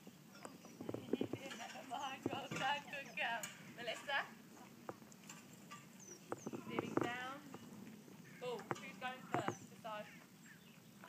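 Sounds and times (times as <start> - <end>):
pony hooves knocking: 0.4 - 10.0.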